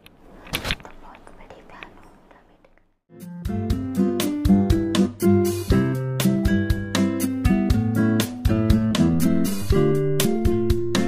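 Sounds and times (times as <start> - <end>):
person whispering: 0.8 - 2.8.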